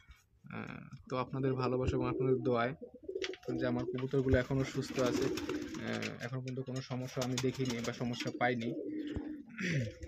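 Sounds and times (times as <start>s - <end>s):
pigeons cooing: 2.0s - 6.3s, 7.3s - 10.0s.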